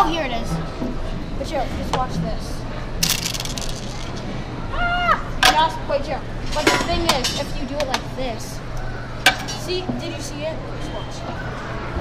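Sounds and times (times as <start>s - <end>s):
children exclaiming and laughing: 4.6s - 12.0s.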